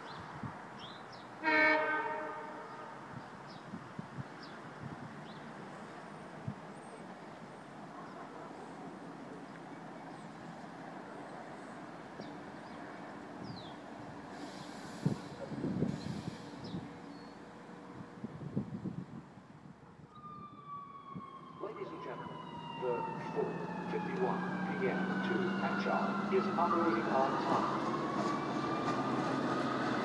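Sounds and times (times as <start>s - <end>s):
train wheels rumbling on rail: 13.5s - 17.1s, 25.0s - 30.0s
train brakes whining: 14.3s - 16.9s.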